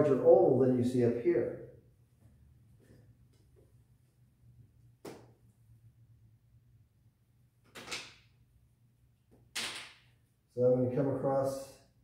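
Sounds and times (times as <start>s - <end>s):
low room hum: 0.0s - 12.0s
plastic tap on whiteboard: 5.0s - 5.3s.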